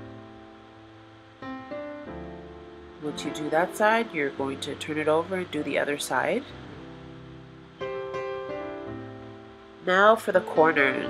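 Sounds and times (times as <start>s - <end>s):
soft instrumental music: 0.0s - 11.0s.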